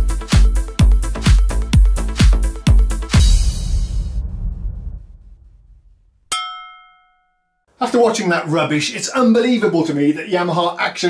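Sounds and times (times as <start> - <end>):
electronic dance beat: 0.0 - 3.4
bell-like metallic ding: 6.3 - 7.6.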